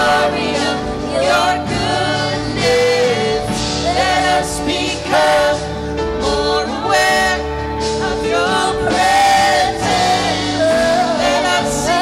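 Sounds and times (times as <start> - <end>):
band accompaniment: 0.0 - 12.0
vocalists singing in harmony: 0.0 - 12.0.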